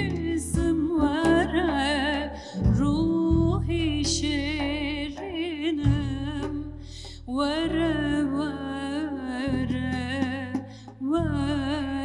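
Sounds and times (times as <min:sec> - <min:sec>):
woman singing folk melody: 0:00.0 - 0:12.0.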